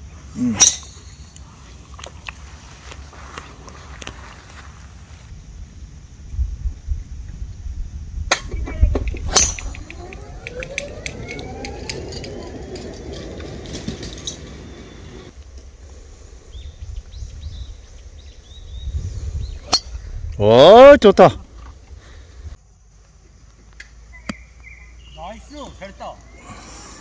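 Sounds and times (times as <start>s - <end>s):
wind rumble on microphone: 5.3s - 20.8s
golf club striking ball: 8.3s - 11.2s
rising whine: 8.5s - 15.8s.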